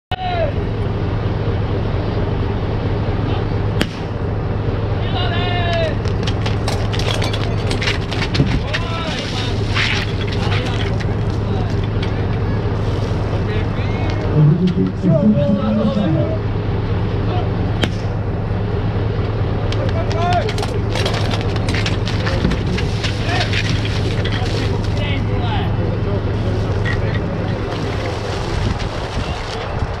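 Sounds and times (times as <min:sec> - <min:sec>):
fire pump engine running: 0:00.4 - 0:29.9.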